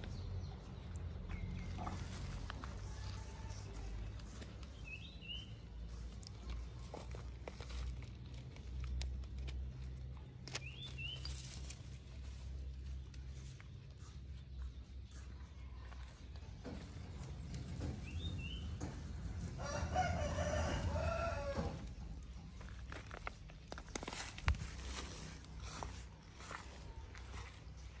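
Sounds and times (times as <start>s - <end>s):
faint outdoor background: 0.0s - 28.0s
rooster crowing: 19.6s - 21.9s.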